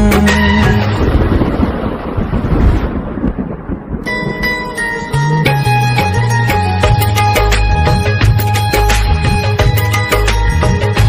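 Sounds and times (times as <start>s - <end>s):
thunder rumbling: 0.0s - 8.1s
heavy rain: 0.0s - 9.9s.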